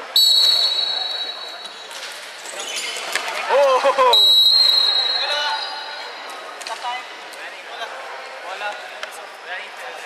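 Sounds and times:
referee's whistle blast: 0:00.1 - 0:01.8, 0:04.2 - 0:05.9.

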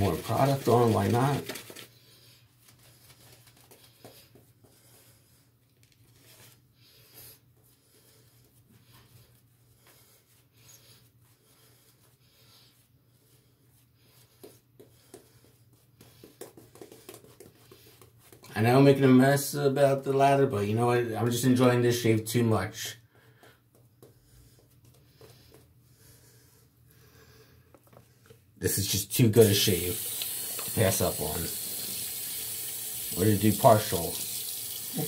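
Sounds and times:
shaving brush crackling lather: 0:00.0 - 0:01.9, 0:29.3 - 0:35.0.

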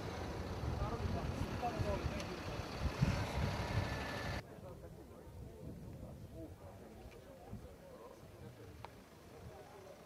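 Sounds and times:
heavy vehicle engines rumbling: 0:00.0 - 0:04.4
faint crowd chatter: 0:00.7 - 0:10.0.

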